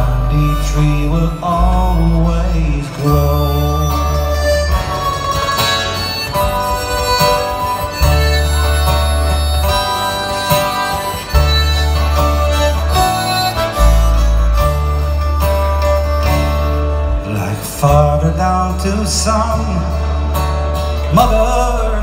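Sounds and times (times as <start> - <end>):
deep held bass notes: 0.0 - 22.0
guitars: 0.0 - 22.0
harmonica melody: 0.0 - 22.0
button accordion: 3.2 - 16.8.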